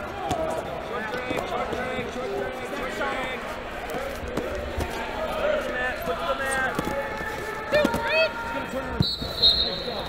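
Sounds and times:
voices in large hall: 0.0 - 10.0.

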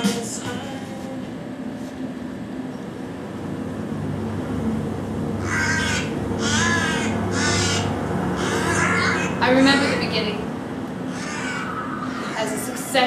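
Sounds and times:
low steady hum: 0.0 - 13.0
crows cawing: 5.4 - 10.2, 11.0 - 12.9.

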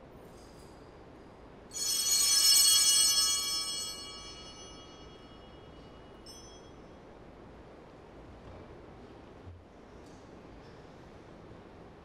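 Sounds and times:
altar bells ringing: 1.7 - 6.8.

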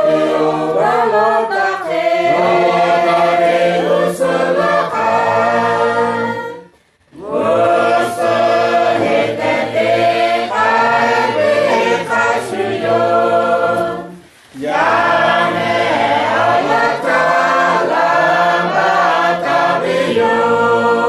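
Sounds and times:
choir singing unaccompanied: 0.0 - 21.0.

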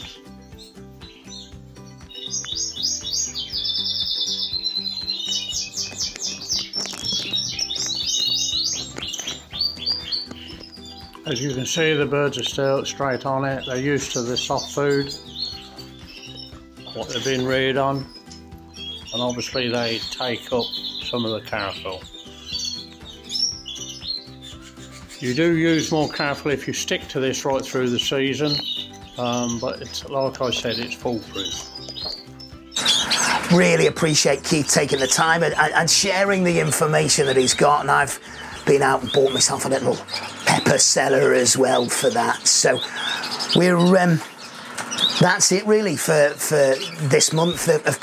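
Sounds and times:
background music of low notes: 0.0 - 48.0
canaries singing: 0.0 - 48.0.

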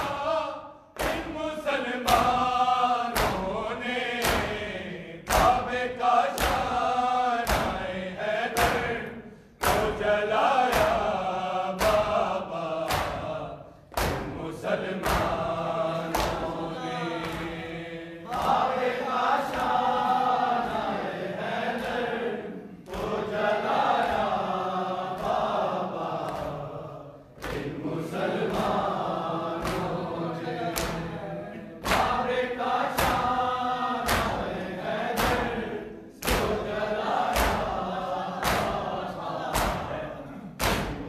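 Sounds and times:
men chanting together: 0.0 - 41.0
hands slapping bare chests: 0.9 - 1.4, 2.0 - 3.6, 4.2 - 7.9, 8.5 - 10.1, 10.7 - 11.2, 11.8 - 17.6, 18.3 - 19.9, 27.3 - 27.8, 29.4 - 30.0, 30.7 - 31.1, 31.8 - 33.4, 34.0 - 35.6, 36.2 - 37.8, 38.4 - 40.0, 40.6 - 41.0.

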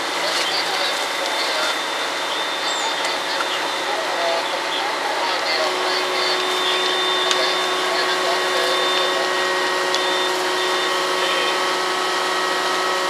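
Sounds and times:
fire truck engine and pump whine: 0.0 - 13.0.

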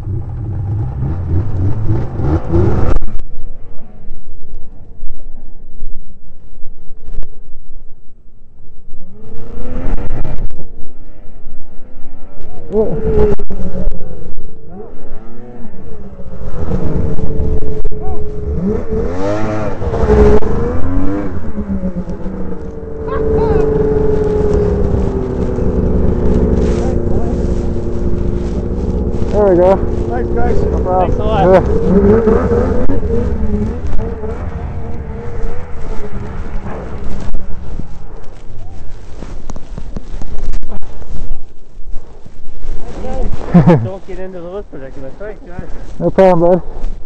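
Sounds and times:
snowmobile engine revving: 0.0 - 4.1, 9.0 - 39.5, 42.8 - 46.7.

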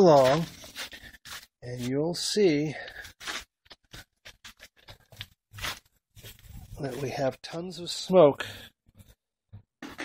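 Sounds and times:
crunches and scrapes: 2.9 - 7.1.

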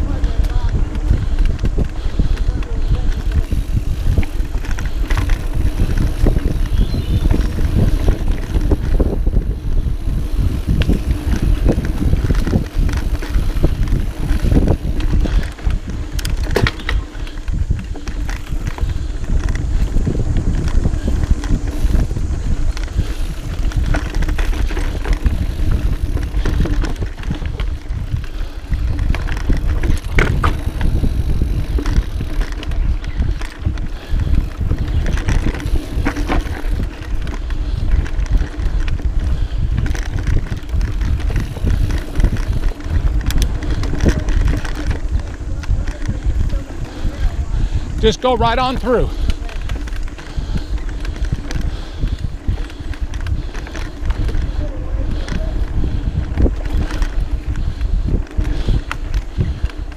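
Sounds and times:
bike rattling over bumps: 0.0 - 59.9
bike tyres rumbling on dirt trail: 0.0 - 59.9.

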